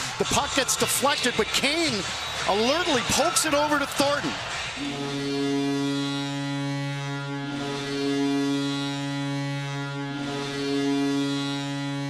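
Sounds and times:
crowd cheering: 0.0s - 6.2s
goal horn long low blast: 4.4s - 12.0s.

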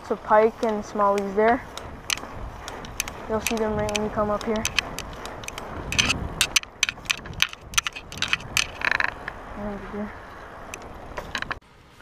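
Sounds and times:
bicycle rattling and clicking: 0.0s - 11.6s.

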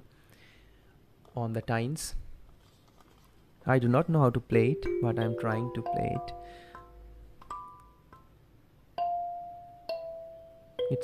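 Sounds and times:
kalimba notes ringing: 4.6s - 8.1s, 9.0s - 11.0s.

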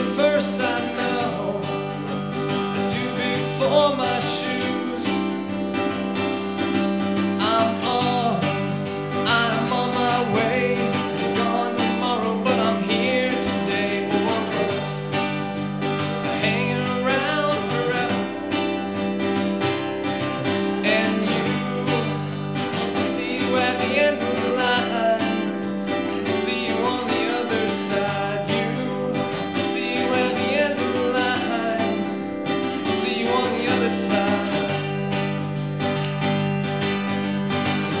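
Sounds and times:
man singing: 0.0s - 5.8s, 7.2s - 15.3s, 16.2s - 18.9s, 20.3s - 35.4s
acoustic guitar strumming: 0.0s - 38.0s.

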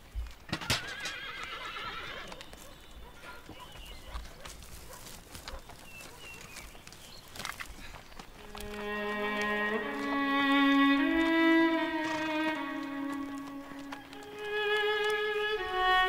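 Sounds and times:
horse whinnying: 0.6s - 2.4s.

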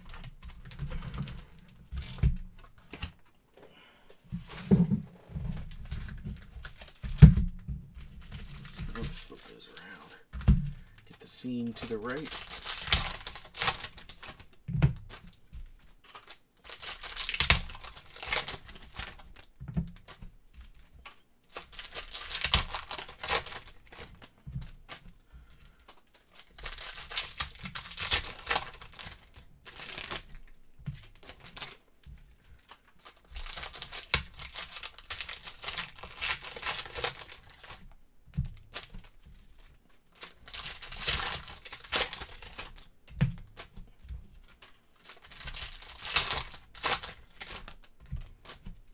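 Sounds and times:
foil wrappers crinkling and tearing: 0.0s - 3.2s, 5.5s - 7.4s, 8.0s - 48.9s.

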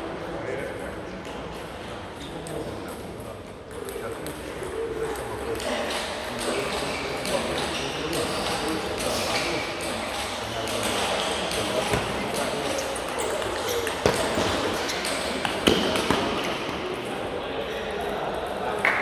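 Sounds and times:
babble of voices in hall: 0.0s - 19.0s.

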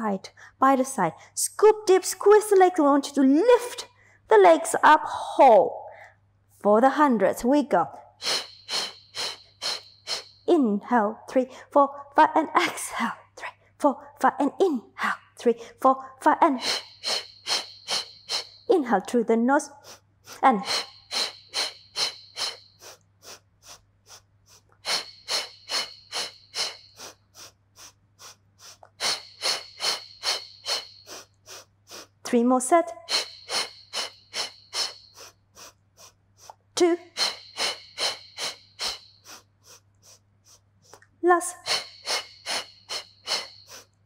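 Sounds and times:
woman's sharp rhythmic breaths: 0.2s - 1.4s, 3.5s - 5.2s, 5.8s - 6.4s, 7.9s - 10.5s, 11.2s - 14.3s, 15.0s - 44.0s.

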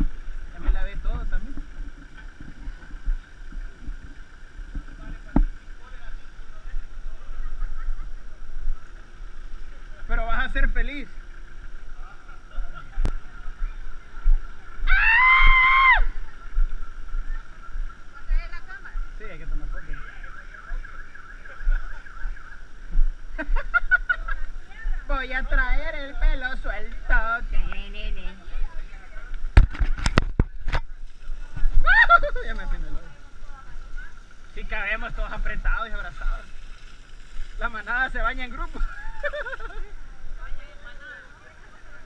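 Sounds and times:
distant voices: 0.0s - 42.0s
wind on microphone: 12.9s - 40.7s.

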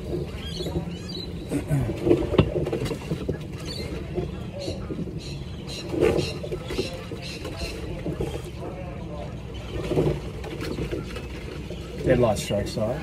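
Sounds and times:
water along rowing boat hull: 0.0s - 13.0s.

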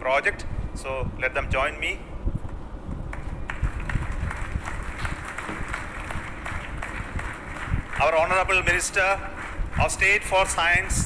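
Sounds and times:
audience applauding: 3.1s - 10.3s.

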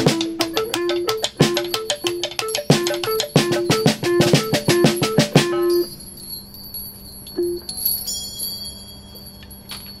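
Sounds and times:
chimes ringing: 0.7s - 10.0s.

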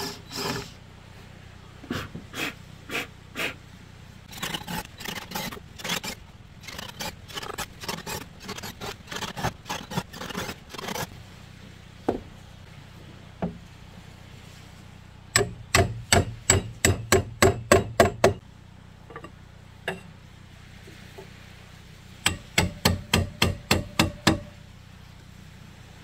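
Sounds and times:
hammer striking: 15.4s - 18.4s, 22.3s - 24.5s.

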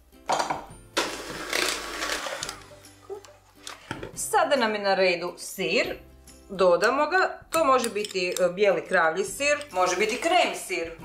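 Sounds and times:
electric hand mixer whisking batter: 1.1s - 2.8s.

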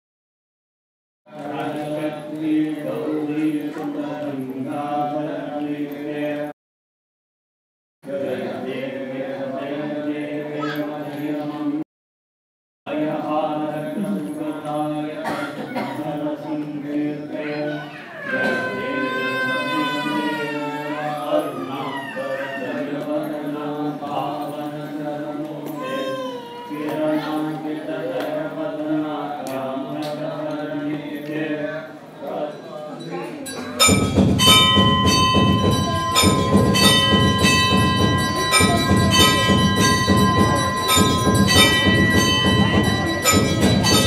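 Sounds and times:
person singing devotional song: 1.3s - 6.6s, 8.0s - 11.8s, 12.9s - 44.0s
brass bell ringing: 33.5s - 44.0s.

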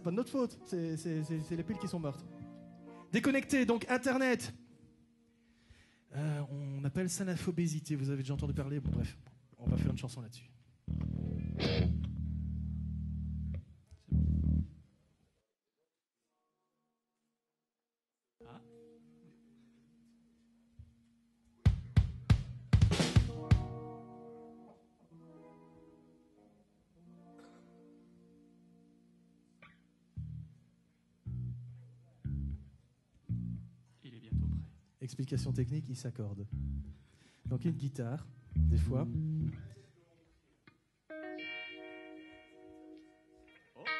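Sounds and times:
electric guitar low chords: 0.6s - 3.1s, 8.4s - 10.2s, 10.9s - 14.8s, 21.6s - 39.7s, 41.1s - 43.9s
low guitar string plucked: 10.9s - 13.6s.

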